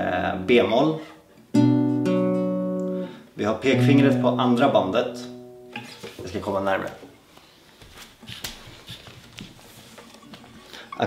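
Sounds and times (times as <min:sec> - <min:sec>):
guitar handling clicks and knocks: 0:05.7 - 0:06.2.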